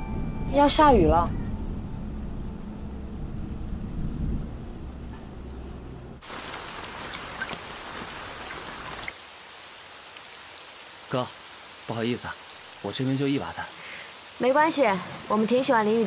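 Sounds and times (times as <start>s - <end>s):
low rumble: 0.0s - 6.2s
heavy rain: 6.2s - 16.0s.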